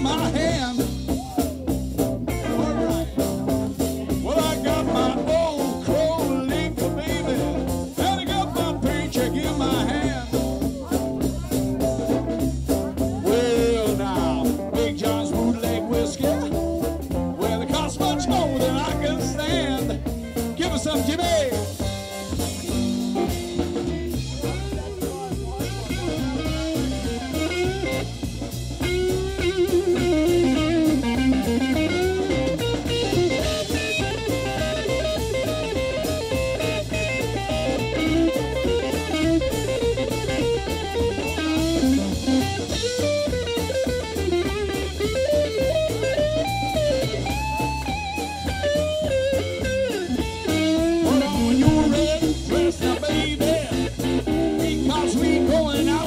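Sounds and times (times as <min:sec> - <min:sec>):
drum kit beat: 0:00.0 - 0:56.0
electric guitar lead: 0:00.0 - 0:56.0
upright double bass: 0:00.0 - 0:56.0.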